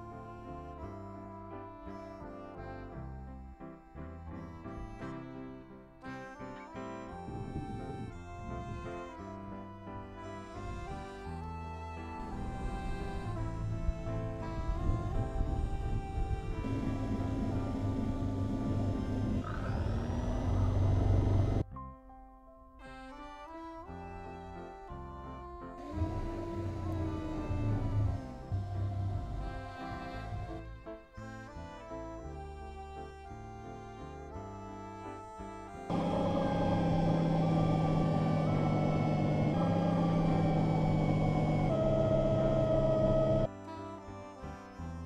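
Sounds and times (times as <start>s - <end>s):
electric drill motor whir: 7.2s - 9.2s, 10.6s - 21.6s, 25.8s - 30.6s, 35.9s - 43.5s.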